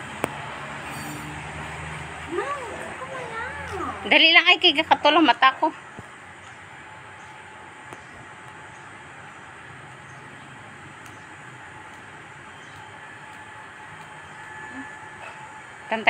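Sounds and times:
outdoor background hiss: 0.0 - 16.0.

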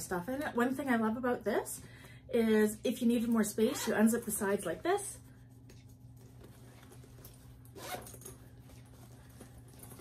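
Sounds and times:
zipper unzipping: 7.7 - 8.3.

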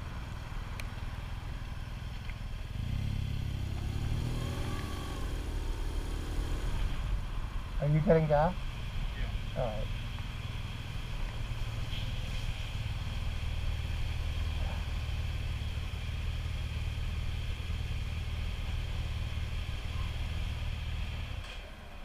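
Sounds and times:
motorcycle engine idling: 0.0 - 6.0, 6.7 - 21.7.

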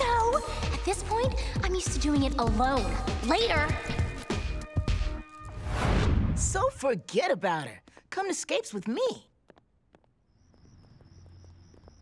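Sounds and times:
faint crickets chirping: 9.5 - 12.0.

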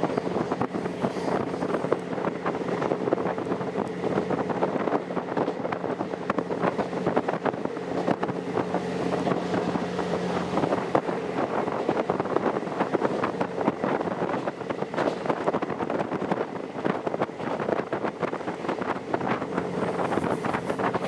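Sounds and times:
train engine drone: 0.0 - 21.0
wheels clattering over rail joints: 0.0 - 21.0
wind rushing over microphone: 0.0 - 21.0.

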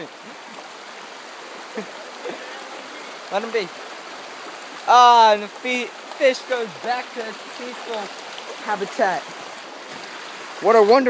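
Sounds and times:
rocky stream flowing: 0.0 - 11.0.

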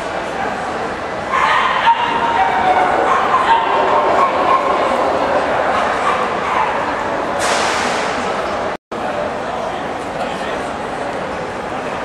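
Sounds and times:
busy hall background noise: 0.0 - 12.0.

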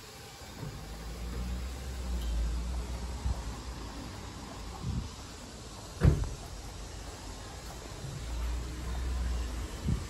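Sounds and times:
low street background: 0.0 - 10.0
short thump: 6.0 - 6.4.

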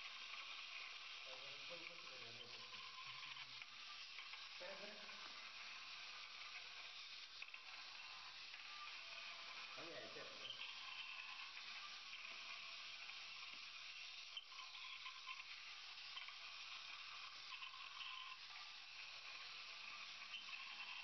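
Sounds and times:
faint steady hiss: 0.0 - 21.0.

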